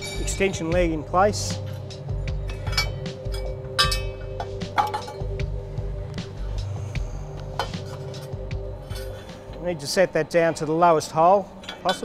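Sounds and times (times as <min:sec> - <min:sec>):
sharp metallic clanks: 0:00.0 - 0:00.6, 0:01.6 - 0:05.4
steel parts clinking: 0:00.0 - 0:00.6, 0:01.6 - 0:05.4, 0:11.5 - 0:12.0
background music: 0:00.0 - 0:12.0.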